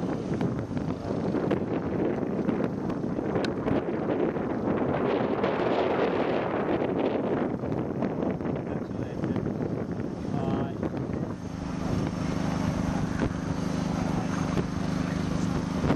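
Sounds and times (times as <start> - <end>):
wind buffeting microphone: 0.0 - 15.9.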